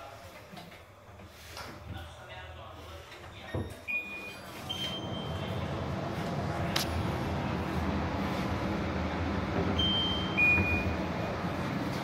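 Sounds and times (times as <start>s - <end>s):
short electronic beeps: 9.8s - 10.9s.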